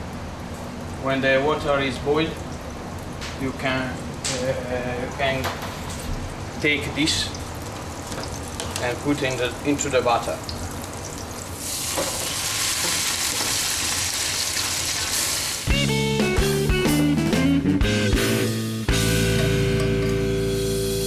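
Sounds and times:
butter sizzling in a pan: 10.9s - 15.7s
music with guitar and beat: 15.7s - 21.0s.

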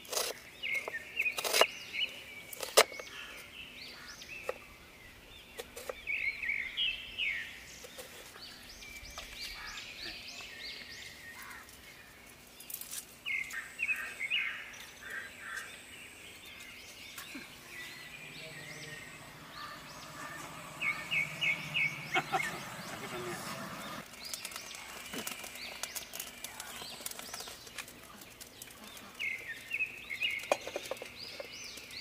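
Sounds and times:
small birds chirping: 0.0s - 32.0s.

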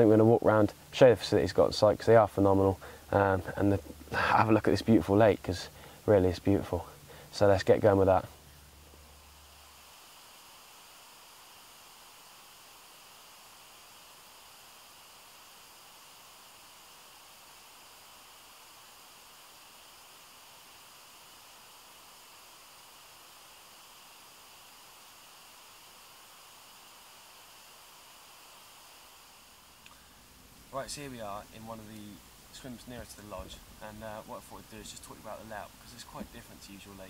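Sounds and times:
faint steady hiss: 0.0s - 37.0s.

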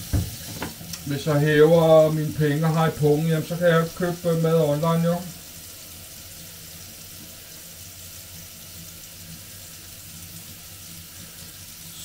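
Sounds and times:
tap running into a sink: 0.0s - 1.1s.

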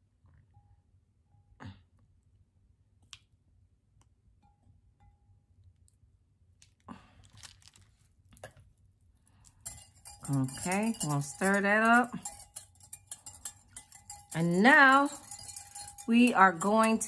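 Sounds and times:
spatula and spoon scraping glass: 9.4s - 17.0s
glass ringing pings: 9.7s - 17.0s.

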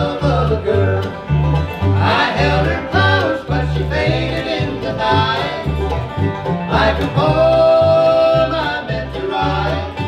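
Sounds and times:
bluegrass band playing: 0.0s - 10.0s
upright bass: 0.0s - 10.0s.

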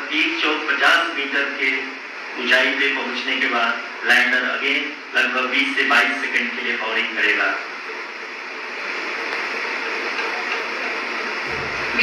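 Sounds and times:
steady hiss: 0.0s - 12.0s
low rumble: 11.5s - 12.0s.

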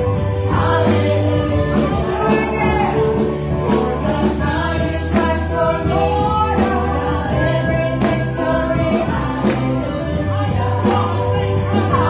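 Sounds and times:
group singing gospel: 0.0s - 12.0s
keyboard: 0.0s - 12.0s.

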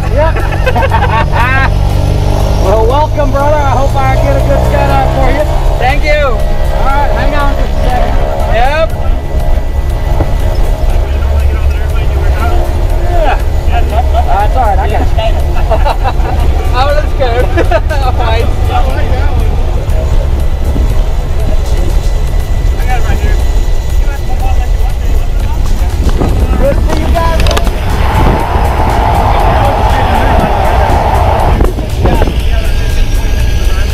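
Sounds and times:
propeller plane engine running: 0.0s - 33.9s.

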